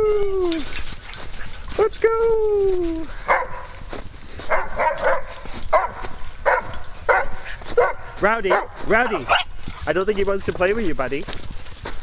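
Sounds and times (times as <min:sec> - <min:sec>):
dog barking: 0:03.2 - 0:03.8, 0:04.4 - 0:09.5.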